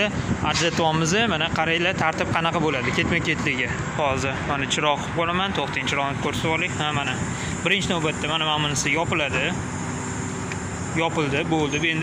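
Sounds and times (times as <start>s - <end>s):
man talking: 0.0s - 9.6s, 10.9s - 12.0s
steady background hum: 0.0s - 12.0s.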